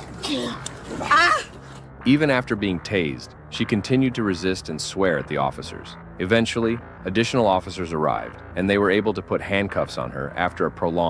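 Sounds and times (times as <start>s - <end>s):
woman wailing: 0.2s - 1.6s.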